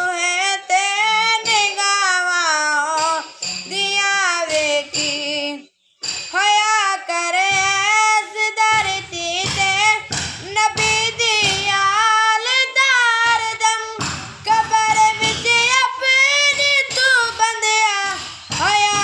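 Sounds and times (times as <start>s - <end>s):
boy singing unaccompanied: 0.0s - 19.0s.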